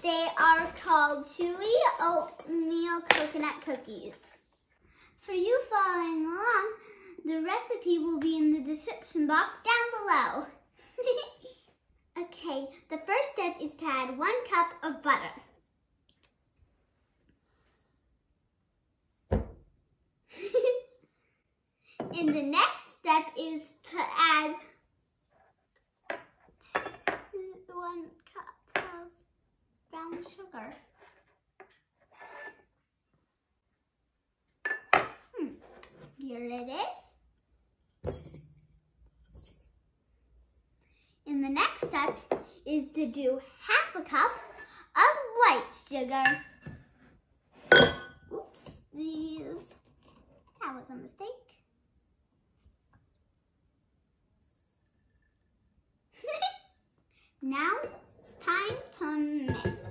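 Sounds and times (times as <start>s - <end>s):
metal cup clinking against glass jar: 38.0s - 39.8s.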